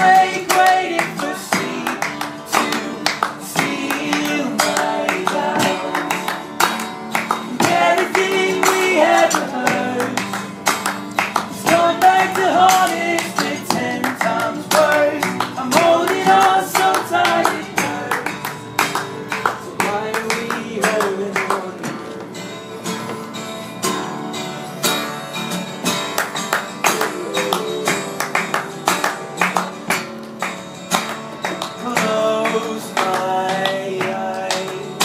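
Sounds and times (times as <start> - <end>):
man singing: 0.0 - 6.2, 7.5 - 10.3, 11.5 - 18.5, 19.4 - 22.2, 26.9 - 28.8, 31.8 - 35.0
acoustic guitar strumming: 0.0 - 35.0
hand claps: 0.0 - 35.0.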